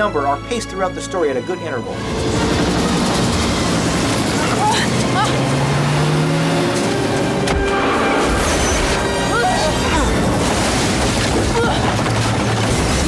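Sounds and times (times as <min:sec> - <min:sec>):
action music score: 0:00.0 - 0:13.0
car engines running hard: 0:02.0 - 0:13.0.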